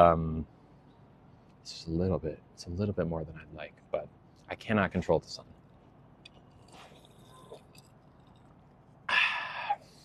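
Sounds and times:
person sipping water: 6.3s - 8.7s
breathy ahh exhale: 9.1s - 10.0s.

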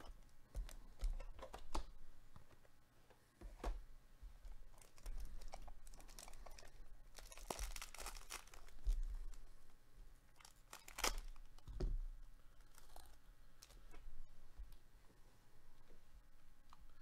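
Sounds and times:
foil wrapper tearing and crinkling: 4.8s - 9.4s, 10.4s - 11.5s.

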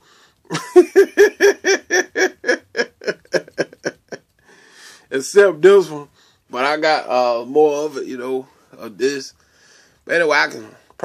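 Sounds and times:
man laughing: 0.5s - 4.3s.

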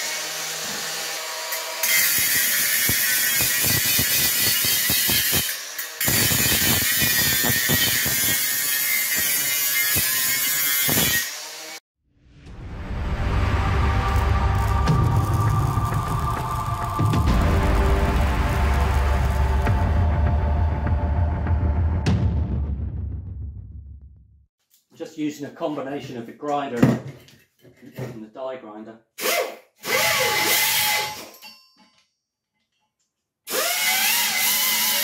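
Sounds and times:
angle grinder grinding metal: 0.0s - 11.8s, 33.5s - 35.0s
deep rumble: 12.1s - 24.5s
intro music sting: 12.2s - 23.8s.

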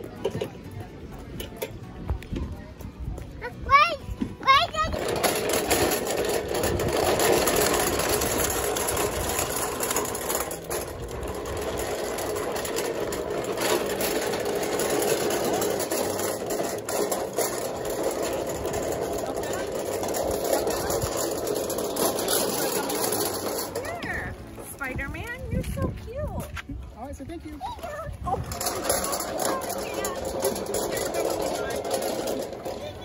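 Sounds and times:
wagon wheels rolling on pavement: 0.0s - 33.0s.

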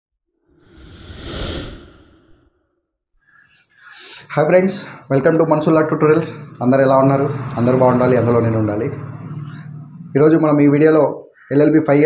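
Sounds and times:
whoosh effect: 0.6s - 2.6s.

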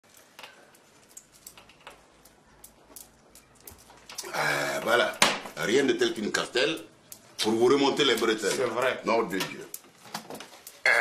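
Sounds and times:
light clicks of objects handled: 0.0s - 4.3s.

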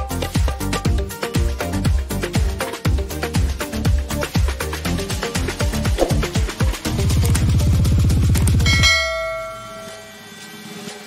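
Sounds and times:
music with pulsing bass line: 0.0s - 9.4s
bell-like ding: 8.6s - 10.2s.

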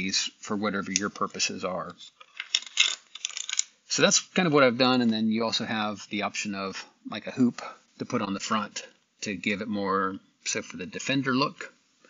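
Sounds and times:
plastic parts clicking and rattling: 1.0s - 3.7s.

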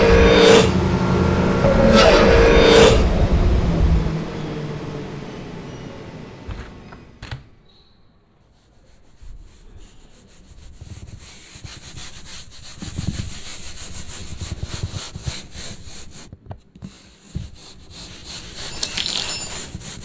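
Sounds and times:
rapid rhythmic scraping: 8.6s - 20.0s.

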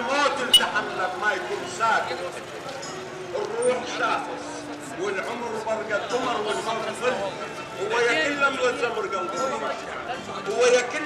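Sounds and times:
street chatter: 0.0s - 11.0s.

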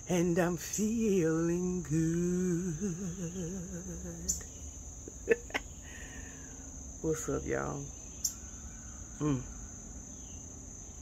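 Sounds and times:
insects singing: 0.0s - 11.0s.

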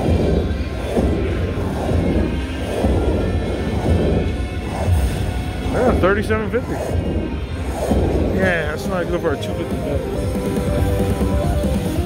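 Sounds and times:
fire sound effects: 0.0s - 12.0s
low rumble: 0.0s - 12.0s
slot machine win music: 8.5s - 12.0s.

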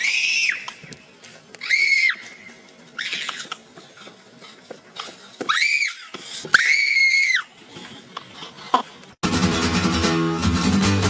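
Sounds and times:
boy shrieking: 0.0s - 0.8s, 1.6s - 3.5s, 5.4s - 7.5s.

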